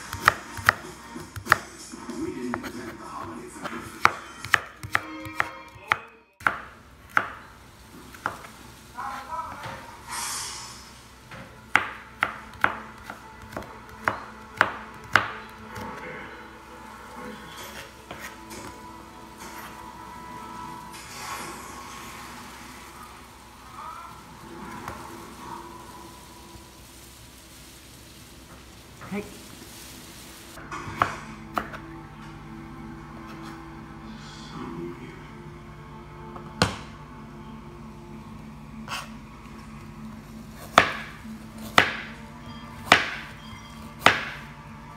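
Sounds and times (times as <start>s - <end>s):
faint television: 0.0s - 27.2s, 30.6s - 44.9s
knife chopping on cutting board: 0.1s - 1.7s, 2.5s - 7.4s, 11.7s - 16.0s, 40.7s - 42.1s, 42.9s - 43.3s, 44.0s - 44.4s
knife scraping on cutting board: 17.5s - 18.7s, 38.9s - 39.2s.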